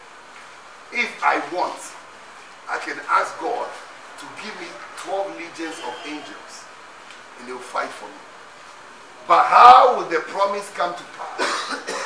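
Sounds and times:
man speaking: 0.9 - 2.0, 2.7 - 6.7, 7.4 - 8.2, 9.2 - 11.2
man coughing: 11.2 - 12.0.

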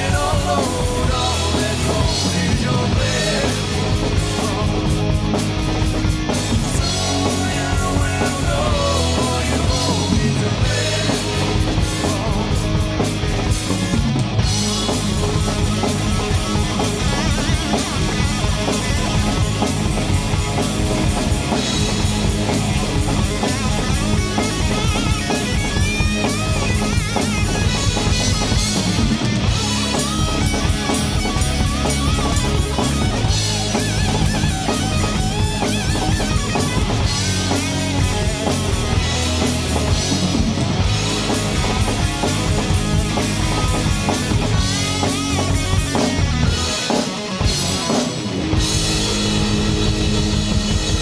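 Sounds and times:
rock band playing live: 0.0 - 51.0.

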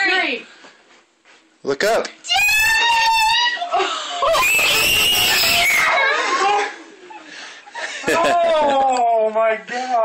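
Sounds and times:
people screaming in excitement: 2.3 - 6.8.

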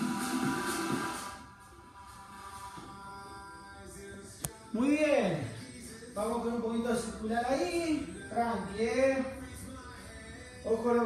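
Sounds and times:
workout background music: 0.0 - 11.0.

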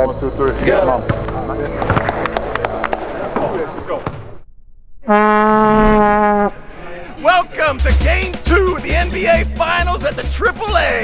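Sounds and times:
plastic horn blown: 5.0 - 6.7.

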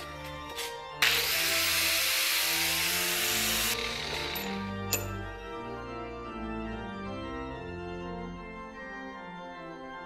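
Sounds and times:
background music: 0.0 - 10.0
angle grinder on metal: 0.6 - 5.0.

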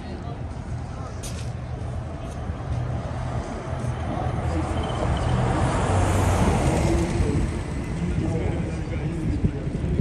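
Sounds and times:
bus passing with low rumble: 0.0 - 10.0
street traffic: 0.0 - 10.0.

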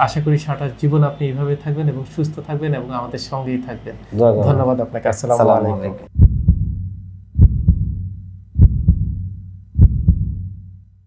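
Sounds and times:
low hum: 5.9 - 10.8
heartbeat thumps: 6.1 - 10.8.

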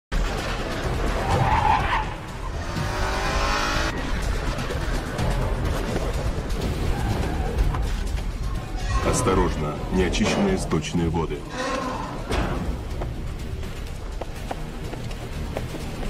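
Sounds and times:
steady vehicle noise: 0.1 - 10.7, 11.4 - 16.0.

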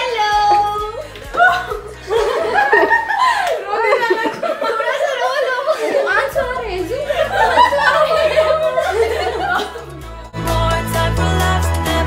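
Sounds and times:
background music: 0.0 - 12.0
women laughing: 0.3 - 10.1.

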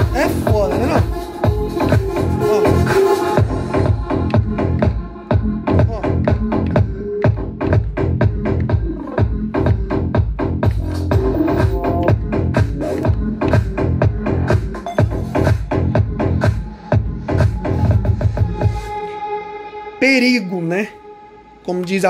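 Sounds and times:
music with drum beat and bass: 0.0 - 19.0.

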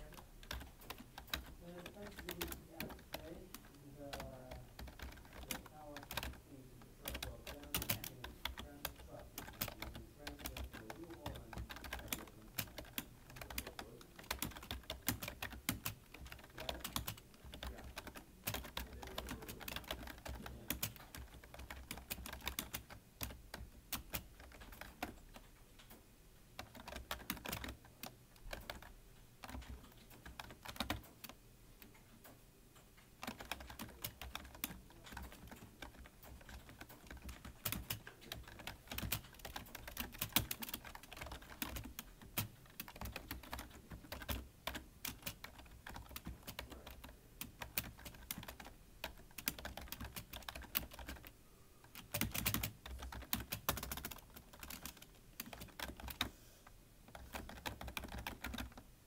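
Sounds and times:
keyboard typing clicks: 0.0 - 6.4, 7.0 - 26.0, 26.6 - 56.3, 57.1 - 58.8.

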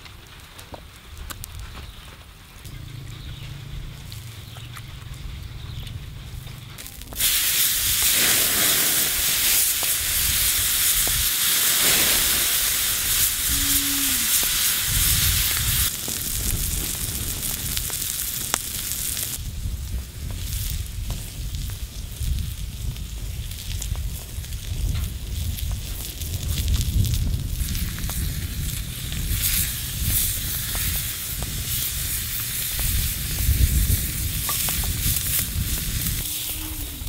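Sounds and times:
meat sizzling on hot plate: 6.8 - 37.0.

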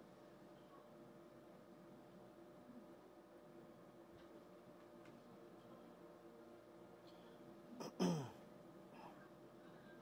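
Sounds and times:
faint steady hum: 0.0 - 10.0
person clearing throat: 7.8 - 8.4.

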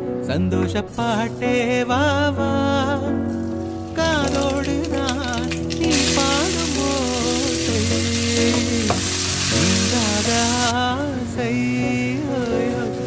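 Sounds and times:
music with singing voice: 0.0 - 13.0
hot oil sizzling in a wok: 3.4 - 10.8, 12.2 - 13.0.

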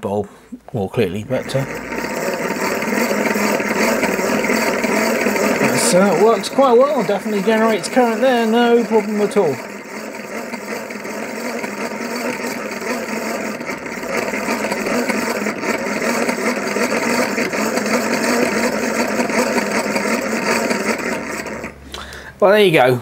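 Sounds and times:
hand-cranked generator whirring: 1.2 - 22.1.

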